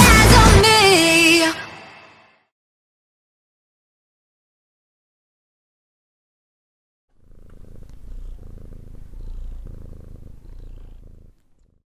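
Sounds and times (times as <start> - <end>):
low rapid pulsing rumble: 7.5 - 11.4.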